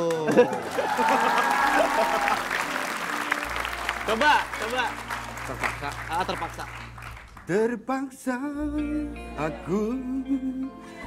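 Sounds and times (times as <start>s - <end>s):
audience applauding: 0.0s - 7.6s.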